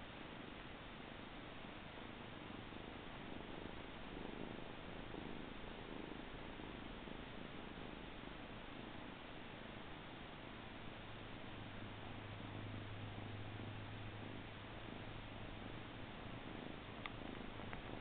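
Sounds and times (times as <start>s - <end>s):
kitten purring: 0.0s - 18.0s.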